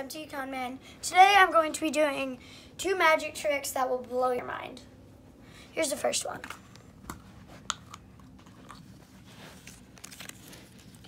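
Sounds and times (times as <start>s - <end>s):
paper rustling: 9.2s - 11.0s.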